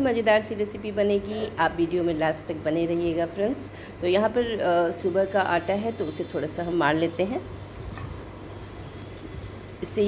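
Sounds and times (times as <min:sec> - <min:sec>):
steady low hum: 0:00.0 - 0:10.0
hands kneading dough: 0:07.2 - 0:10.0.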